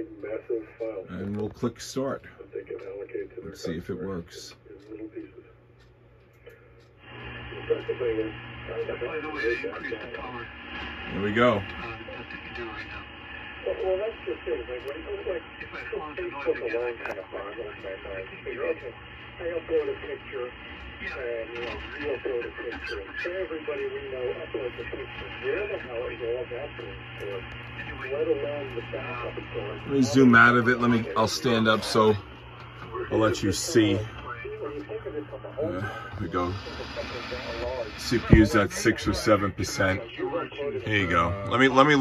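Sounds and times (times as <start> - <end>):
man's voice over radio: 0.0 - 5.4, 7.2 - 42.0
steady low hum: 0.0 - 42.0.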